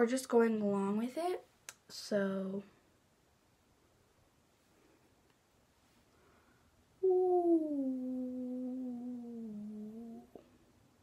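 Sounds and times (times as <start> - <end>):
woman's drawn-out ooh: 7.0 - 10.3.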